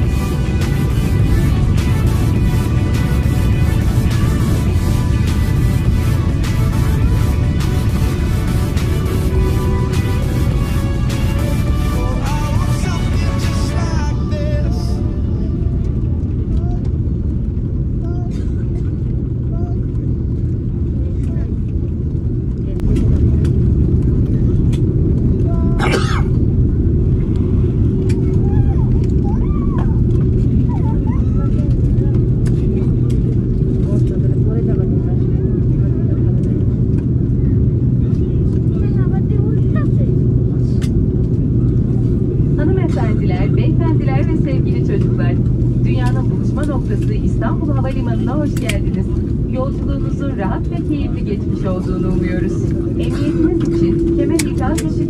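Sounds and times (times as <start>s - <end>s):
engines and wheels rumbling: 0.0s - 55.0s
faint voices: 28.0s - 55.0s
cabin hum: 41.5s - 55.0s.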